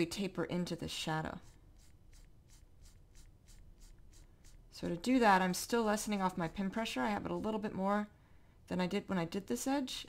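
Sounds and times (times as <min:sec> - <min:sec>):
stylus scratching drawing tablet: 0:00.8 - 0:07.8.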